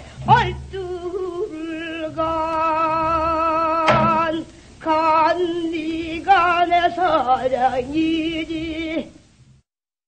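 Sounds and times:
woman singing with vibrato: 0.0 - 9.3.

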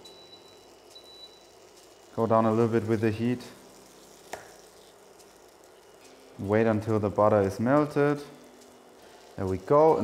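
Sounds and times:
induction hob whine: 0.0 - 10.0
low hiss: 0.0 - 10.0.

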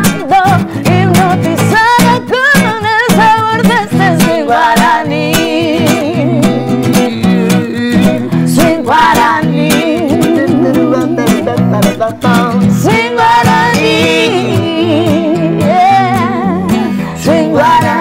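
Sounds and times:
nylon-string guitar strummed: 0.0 - 18.0
woman singing with vibrato: 0.0 - 18.0
man singing: 4.2 - 18.0.

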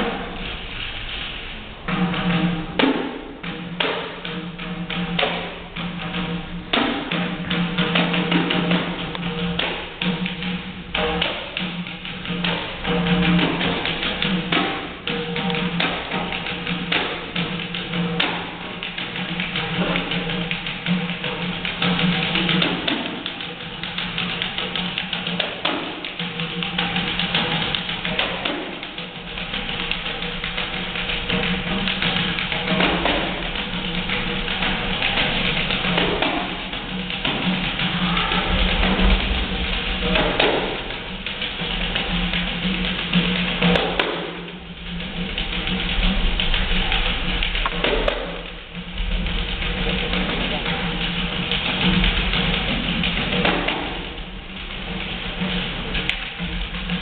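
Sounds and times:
samba rhythm on hand percussion: 0.0 - 57.0.

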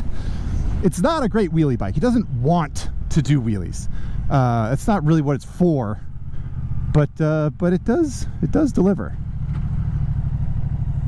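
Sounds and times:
motorcycle engine running: 3.8 - 11.0.

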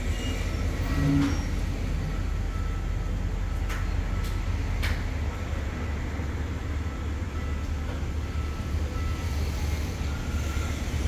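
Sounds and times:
train rolling slowly: 0.0 - 11.0.

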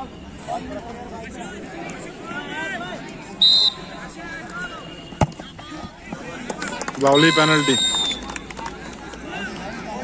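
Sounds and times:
onlookers chattering: 0.0 - 10.0
referee's whistle blast: 3.4 - 4.0.

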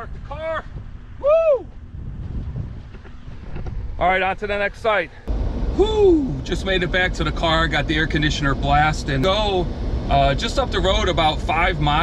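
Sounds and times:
wind buffeting microphone: 0.0 - 12.0
man exclaiming: 1.2 - 1.7, 5.8 - 6.4.

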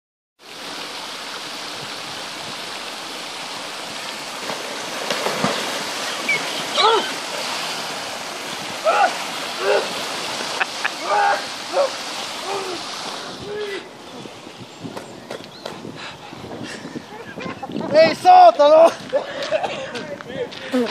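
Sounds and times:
rushing water: 0.4 - 20.9
splashing in water: 0.6 - 14.2
man shouting and gasping: 13.4 - 13.9.

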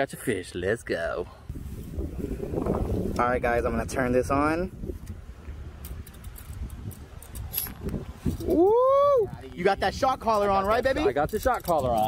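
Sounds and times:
wind rumbling on microphone: 1.4 - 12.0.

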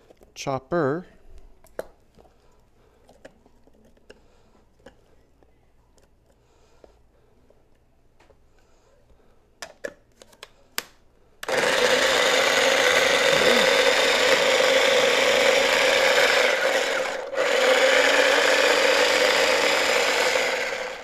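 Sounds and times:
electric food chopper running: 11.4 - 21.0.

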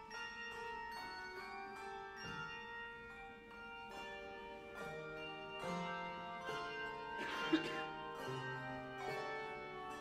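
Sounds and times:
handbell choir ringing chords: 0.0 - 10.0.

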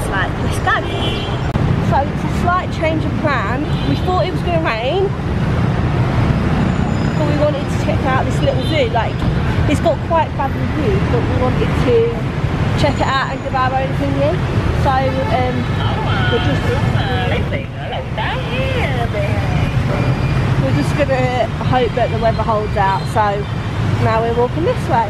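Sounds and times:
road traffic rumble: 0.0 - 25.0
woman talking: 1.8 - 5.2, 7.2 - 12.2, 12.8 - 19.8, 20.6 - 25.0.

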